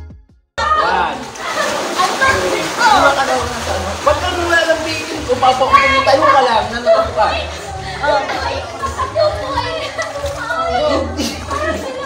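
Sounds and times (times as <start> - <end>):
background music: 0.0 - 12.0
voices of people and children: 0.6 - 12.0.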